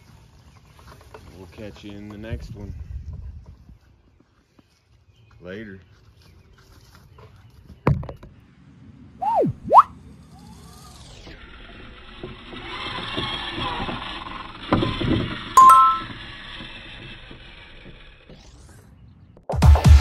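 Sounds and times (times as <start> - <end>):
two-note ding: 15.6 - 16.1.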